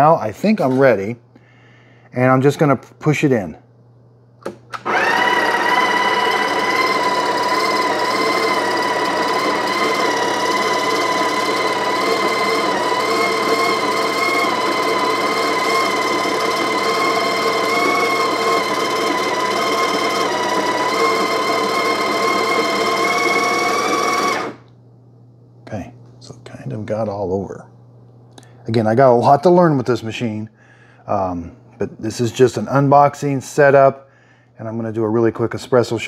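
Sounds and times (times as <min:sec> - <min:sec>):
coffee grinder whining: 0:04.8 - 0:24.7.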